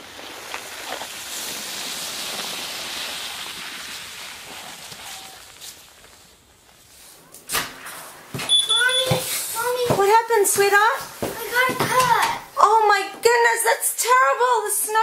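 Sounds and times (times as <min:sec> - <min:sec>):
sled scraping on snow: 0:00.0 - 0:07.2.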